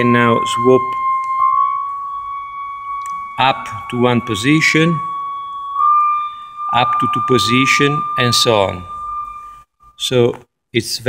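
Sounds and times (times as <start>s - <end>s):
held pipe organ note: 0.0s - 9.6s.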